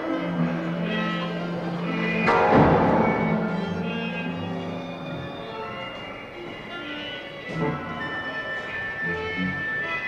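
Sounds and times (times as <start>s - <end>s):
orchestra sparse held notes: 0.0s - 10.0s.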